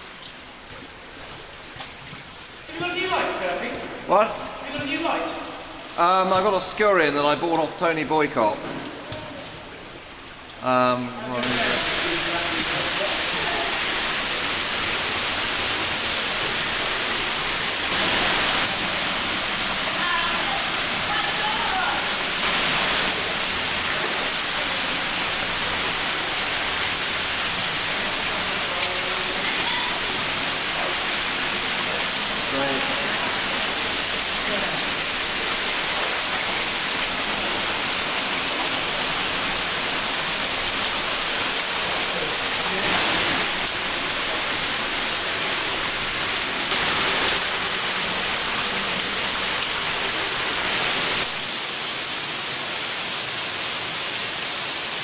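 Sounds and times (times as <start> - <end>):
stream water rushing: 0.0 - 55.0.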